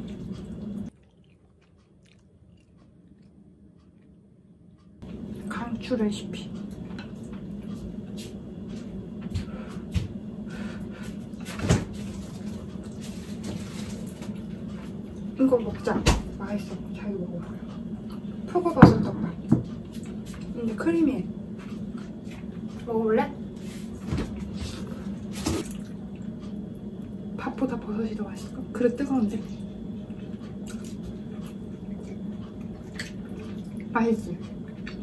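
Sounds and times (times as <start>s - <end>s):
person chewing food: 0.0s - 5.0s, 21.5s - 22.9s, 24.4s - 27.3s, 29.7s - 35.0s
steady low hum: 0.0s - 35.0s
woman speaking: 5.4s - 6.6s, 15.4s - 17.7s, 18.5s - 19.6s, 20.5s - 21.4s, 22.8s - 23.4s, 27.4s - 29.7s, 33.8s - 34.5s.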